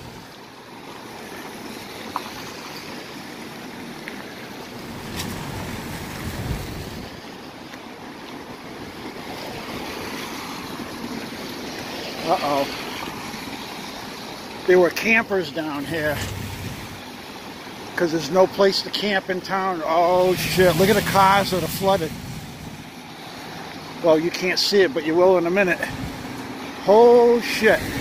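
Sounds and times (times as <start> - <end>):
river rushing: 0.0 - 28.0.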